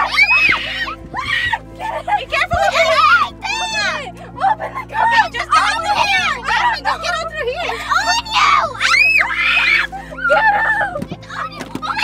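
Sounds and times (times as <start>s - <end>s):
girls shrieking playfully: 0.0s - 12.0s.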